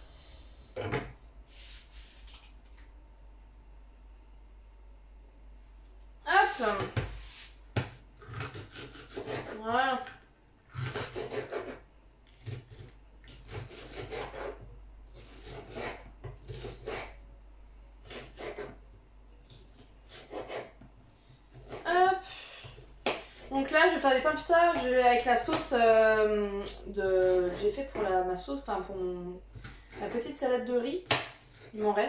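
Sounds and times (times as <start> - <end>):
knife slicing pepper: 8.2 - 9.6, 10.8 - 11.8, 12.4 - 17.2.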